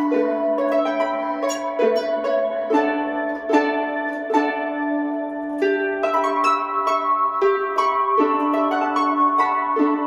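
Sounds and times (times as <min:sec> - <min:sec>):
harp notes plucked: 0:00.0 - 0:10.0.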